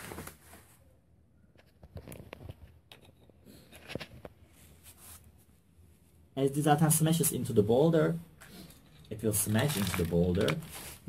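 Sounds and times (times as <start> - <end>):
soft rustle: 3.8 - 6.3.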